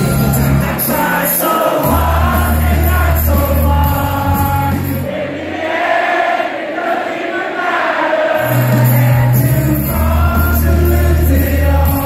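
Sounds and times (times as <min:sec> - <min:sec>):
electronic dance music: 0:00.0 - 0:05.4.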